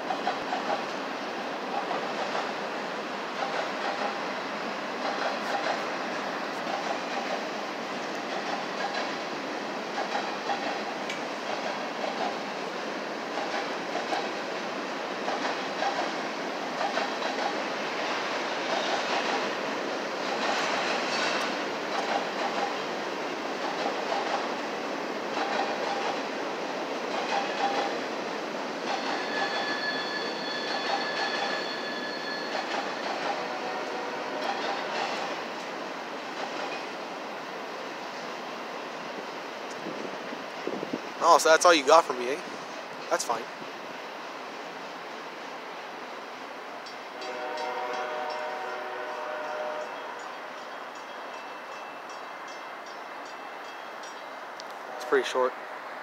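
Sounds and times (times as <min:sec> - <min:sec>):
freight train wheels clacking: 0:00.0 - 0:37.1, 0:46.6 - 0:55.3
high wheel squeal: 0:28.9 - 0:33.4.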